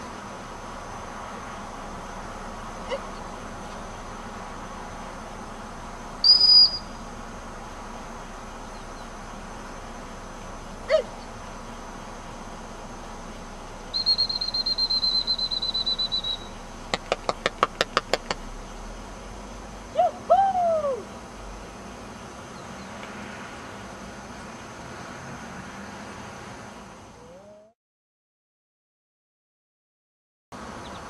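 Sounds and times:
dog whistle blast: 6.2s - 7.0s, 13.9s - 16.6s.

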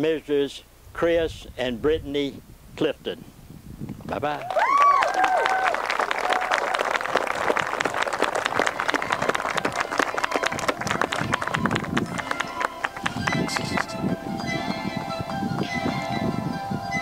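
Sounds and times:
people clapping and cheering: 4.3s - 14.0s
music: 8.5s - 17.0s.

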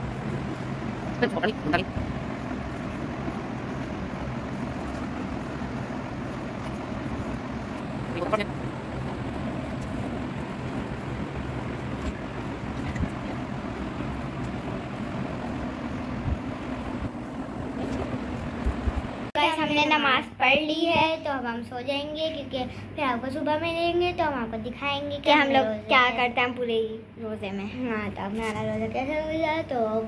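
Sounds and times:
steady background hum and hiss: 0.0s - 30.0s.

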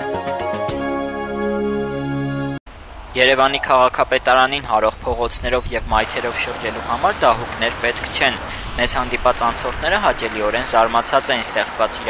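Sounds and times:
low steady background rumble: 2.7s - 12.0s
person talking: 3.2s - 12.0s.

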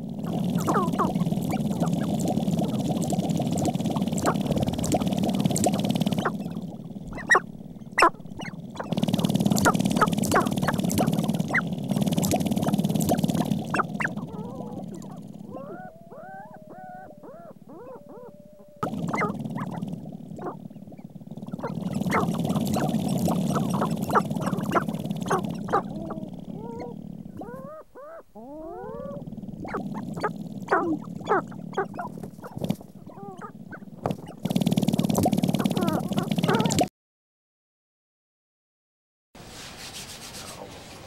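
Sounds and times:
grouse calls swooping in pitch: 0.3s - 36.9s.

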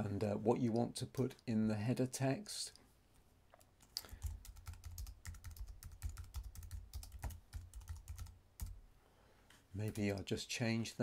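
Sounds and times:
computer keyboard typing: 3.8s - 8.8s, 9.9s - 10.2s.

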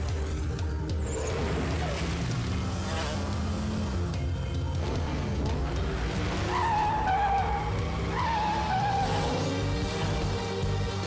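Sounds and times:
cartoon tyre squeals: 6.4s - 9.5s.

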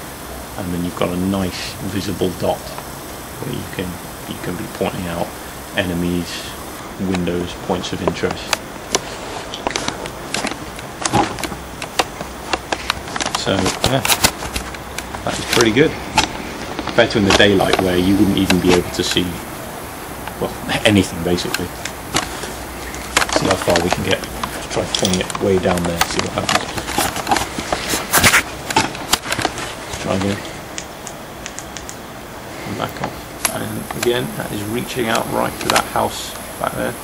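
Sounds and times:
steady background hiss: 0.0s - 37.0s
handling clicks and rustles: 0.8s - 32.1s, 32.7s - 37.0s.

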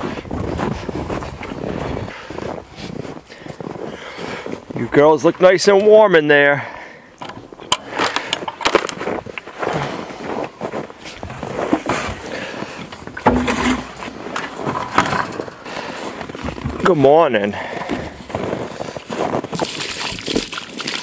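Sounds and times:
footsteps crunching on snow: 0.0s - 5.6s, 8.7s - 14.8s, 15.6s - 21.0s.

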